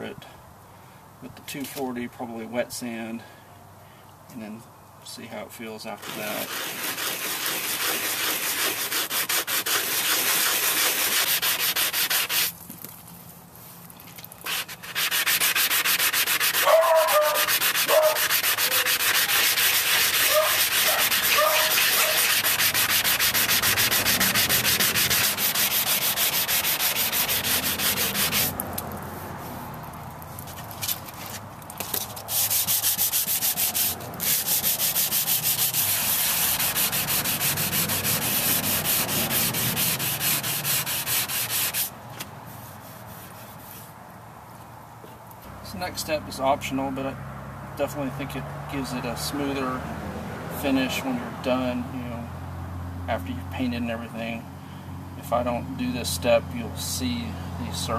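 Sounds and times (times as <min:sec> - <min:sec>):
sanding block rasping: 0:06.0 - 0:12.6, 0:14.4 - 0:28.6, 0:32.3 - 0:41.9, 0:42.5 - 0:43.9.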